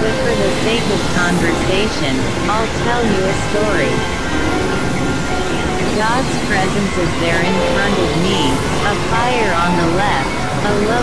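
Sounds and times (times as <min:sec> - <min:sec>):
synthesizer drone: 0:00.0 - 0:11.0.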